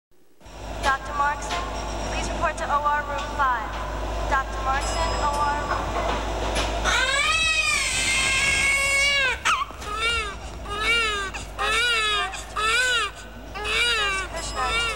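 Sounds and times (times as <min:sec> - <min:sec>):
baby crying: 0:06.8 - 0:14.9.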